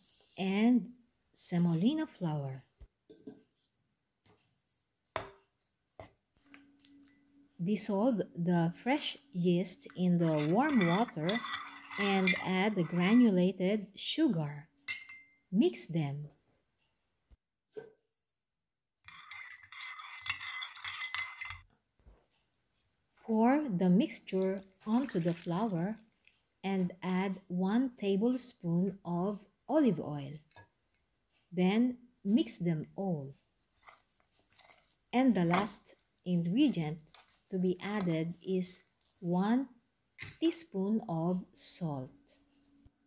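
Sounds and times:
metal spoon clinking in ceramic cup: 10.2s - 13.2s, 14.9s - 15.4s, 19.1s - 21.6s.

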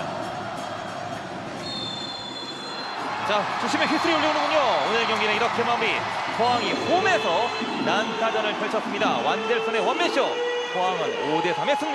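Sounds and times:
referee's whistle long blast: 1.6s - 3.0s, 6.7s - 8.3s.

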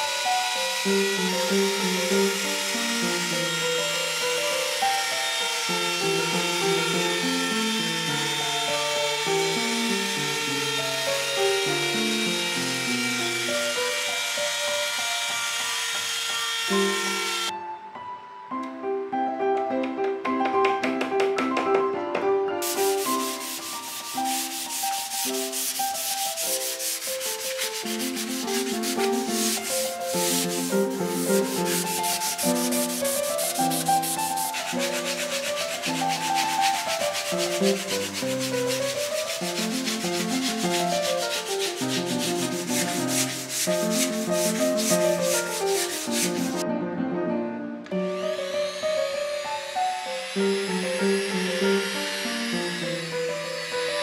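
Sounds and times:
sandpaper rubbing on wood: 0.0s - 17.5s, 22.6s - 46.6s, 48.5s - 54.0s.

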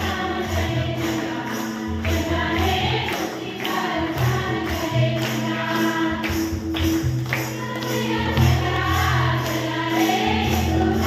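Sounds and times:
congregation singing: 0.0s - 11.0s
hand clapping in time: 0.0s - 11.0s
instrumental backing music: 0.0s - 11.0s.

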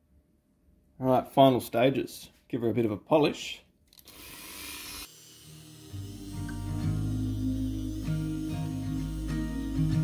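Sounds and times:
rotary tool polishing hiss: 4.2s - 10.0s
soft music: 5.1s - 10.0s.

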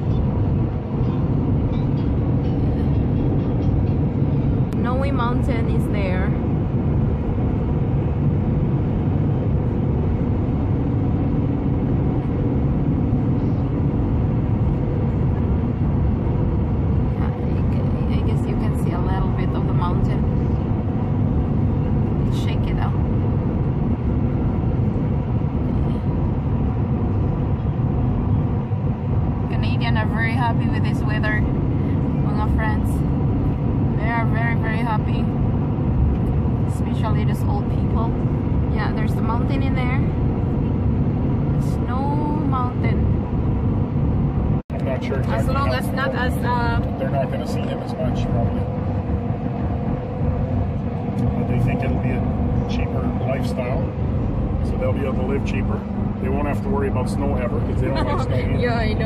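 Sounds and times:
car road and engine noise: 0.0s - 59.0s
quiet conversation: 44.7s - 48.8s, 54.6s - 59.0s.

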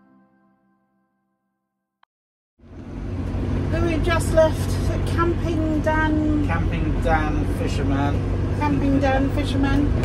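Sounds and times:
vehicle driving rumble inside cab: 2.6s - 10.0s
woman speaking: 8.6s - 10.0s.

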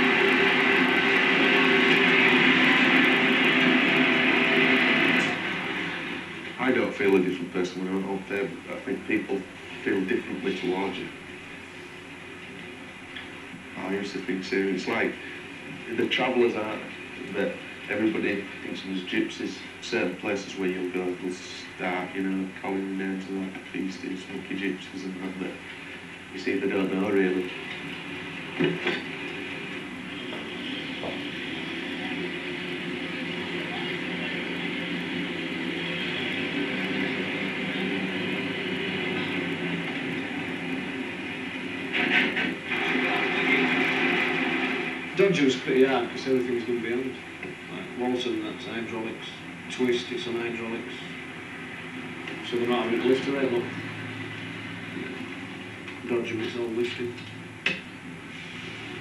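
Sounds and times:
heavy engine running: 0.0s - 12.2s, 25.6s - 47.7s, 51.0s - 59.0s
low background hum: 0.0s - 59.0s.

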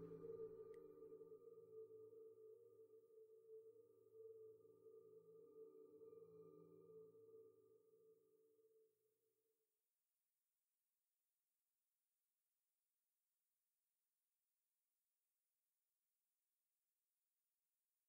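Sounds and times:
ambient droning music: 0.0s - 7.8s.

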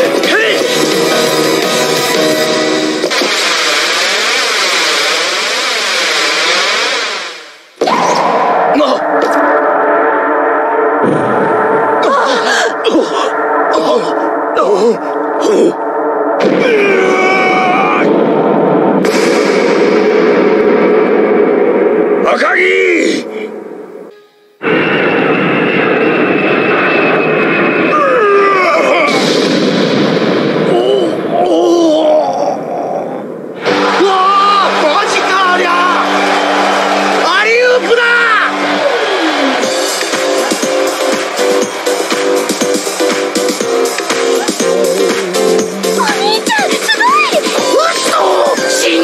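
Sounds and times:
crowd cheering: 0.0s - 12.6s, 16.4s - 23.9s, 24.6s - 31.5s, 33.5s - 49.0s
held dramatic music chord: 8.4s - 16.6s, 39.6s - 47.8s.

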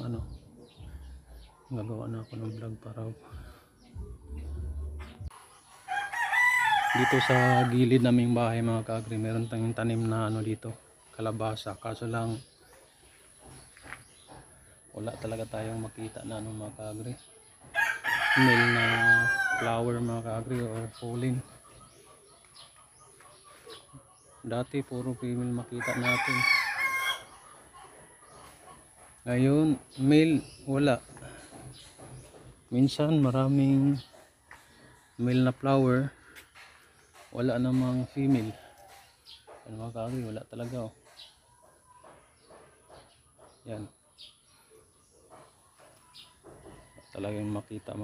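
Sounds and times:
faint outdoor background: 0.0s - 48.0s
rooster crowing: 5.9s - 7.8s, 17.8s - 19.8s, 25.8s - 27.3s.

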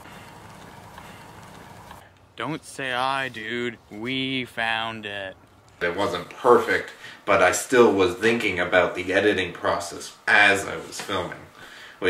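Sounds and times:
outdoor hiss: 0.0s - 12.0s.

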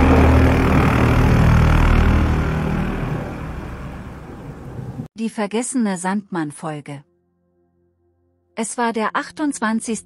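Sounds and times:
loud noisy rush: 0.0s - 5.0s
low humming drone: 0.0s - 5.1s.

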